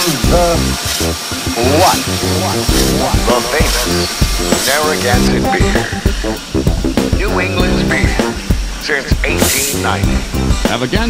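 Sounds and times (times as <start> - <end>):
bouncy band accompaniment: 0.2 - 11.0
voices singing: 1.6 - 10.1.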